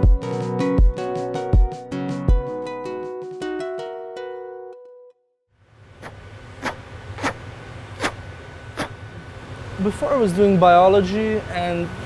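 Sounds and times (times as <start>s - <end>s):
low roar of furnaces: 5.6s - 12.0s.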